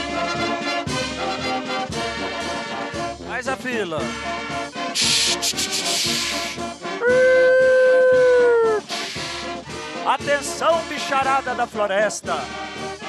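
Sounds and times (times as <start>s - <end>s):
brass band playing: 0.0s - 7.2s, 8.8s - 13.0s.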